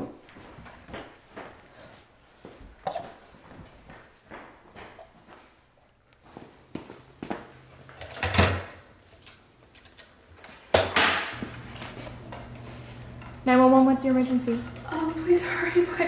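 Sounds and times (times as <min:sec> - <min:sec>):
drawers and cupboard doors clattering: 0:08.0 - 0:08.8.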